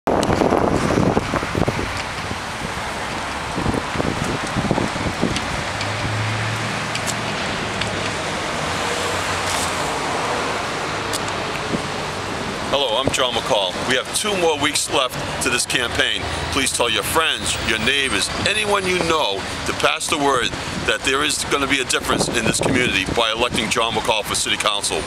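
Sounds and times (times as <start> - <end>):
wind buffeting microphone: 0.1 - 13.8, 20.4 - 24.0
cars going by: 0.1 - 25.0.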